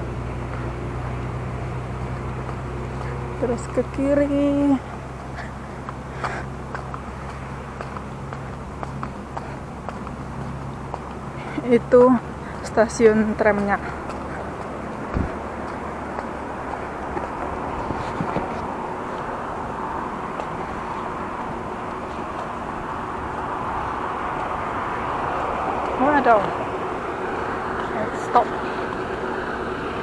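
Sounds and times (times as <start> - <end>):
hiss of passing cars: 0.0 - 30.0.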